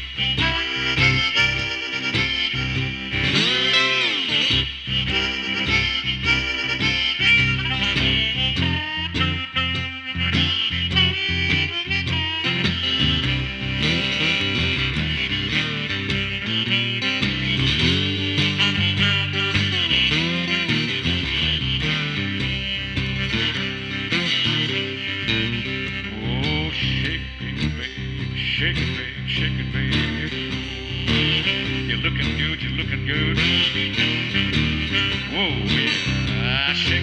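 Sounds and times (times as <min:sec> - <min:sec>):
electric slide guitar blues: 0:00.0 - 0:37.0
harmonica long held notes: 0:00.0 - 0:37.0.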